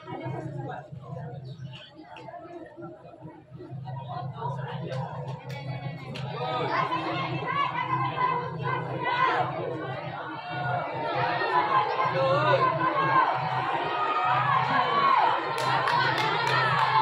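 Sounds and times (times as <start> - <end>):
children chattering and shouting: 0.0 - 17.0
children cheering: 12.5 - 17.0.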